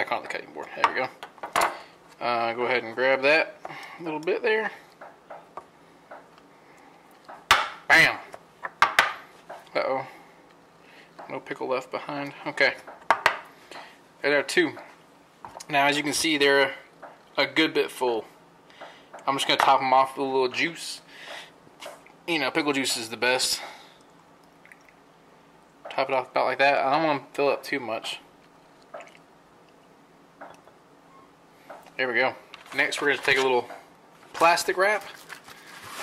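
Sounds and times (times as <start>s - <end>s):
small liquid splash: 28.9s - 29.2s
faint handling sounds: 31.7s - 36.0s.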